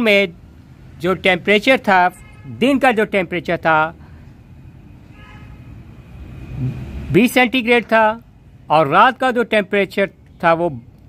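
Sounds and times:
motor vehicle rumble: 0:03.7 - 0:08.9.

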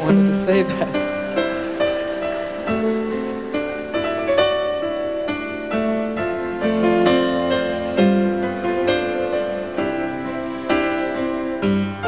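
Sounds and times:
grand piano playing chords: 0:00.0 - 0:12.0.

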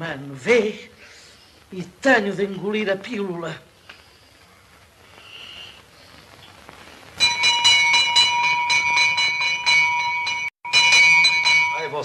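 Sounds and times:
faint soundtrack hiss: 0:00.0 - 0:12.0
electric doorbell ringing: 0:07.2 - 0:12.0.

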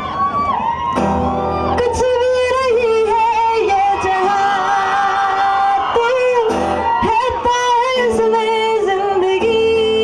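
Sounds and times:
acoustic guitar: 0:00.0 - 0:10.0.

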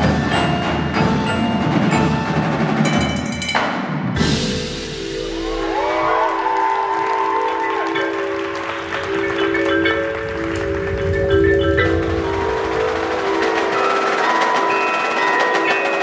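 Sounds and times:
marimba and mallet notes: 0:00.0 - 0:16.0.

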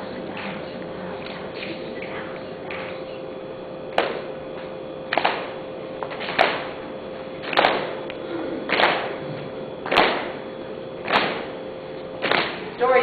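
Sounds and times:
faint steady hum: 0:00.0 - 0:13.0
hand claps in reverberant hall: 0:01.2 - 0:03.2, 0:03.9 - 0:06.8, 0:07.4 - 0:09.2, 0:09.8 - 0:10.4, 0:11.0 - 0:11.6, 0:12.2 - 0:12.7.

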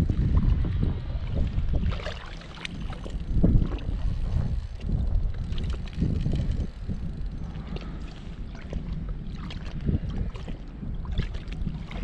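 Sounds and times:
water lapping at boat: 0:00.0 - 0:12.0
wind buffeting microphone: 0:00.0 - 0:12.0.

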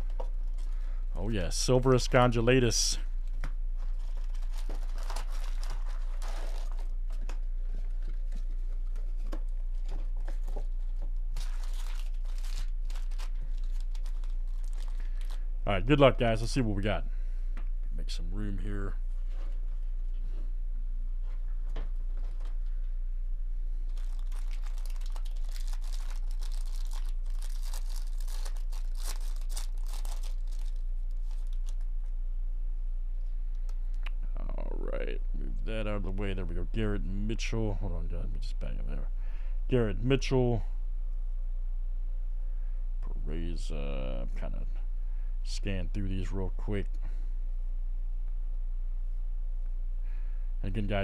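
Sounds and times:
foil packs crinkling: 0:00.0 - 0:16.1, 0:23.9 - 0:31.9
low electrical hum: 0:00.0 - 0:51.0.

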